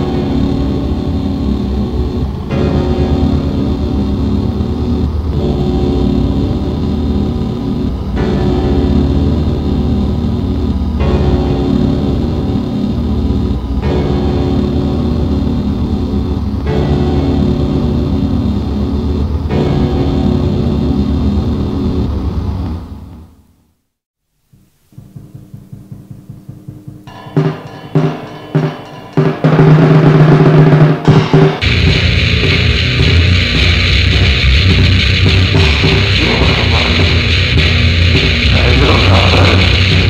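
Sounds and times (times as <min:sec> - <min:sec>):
distorted black metal chords: 0:00.0 - 0:23.0, 0:24.9 - 0:40.0.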